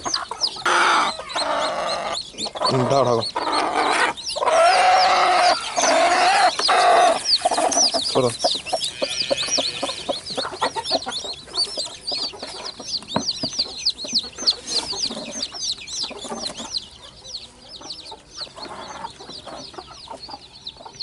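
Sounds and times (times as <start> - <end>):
chicks peeping: 0.0 - 21.0.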